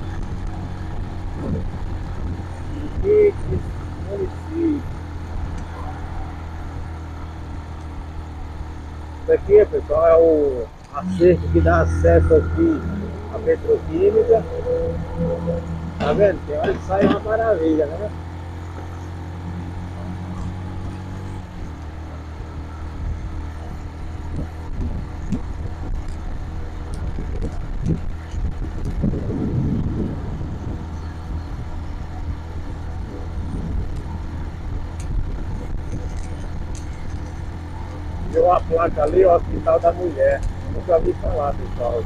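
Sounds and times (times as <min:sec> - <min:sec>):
motorcycle engine running: 0:00.0 - 0:42.0
wind rumble on microphone: 0:00.0 - 0:42.0.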